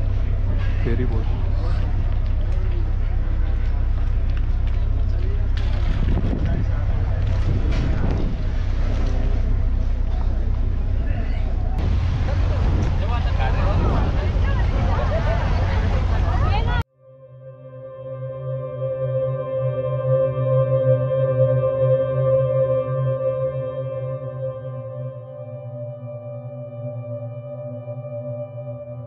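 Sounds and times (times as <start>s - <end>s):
people talking: 0.0s - 16.8s
ferry engine droning: 0.0s - 16.9s.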